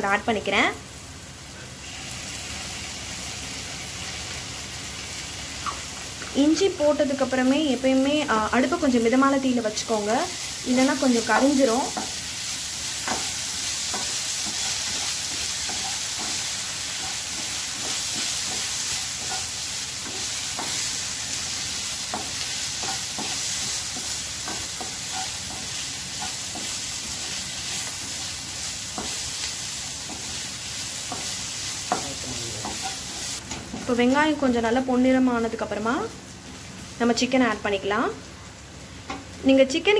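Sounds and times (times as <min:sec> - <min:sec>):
garlic sizzling in oil: 0:00.0 - 0:39.9.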